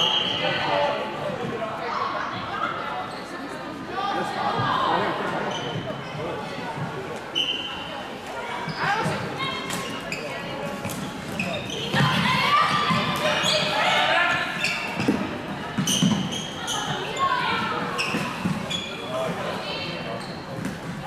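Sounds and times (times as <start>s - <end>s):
shoes squeaking on court: 5.4s - 7.9s, 8.5s - 21.0s.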